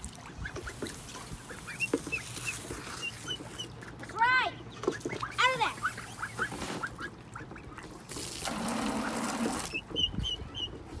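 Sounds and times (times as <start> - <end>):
ducks quacking: 0.2 - 11.0.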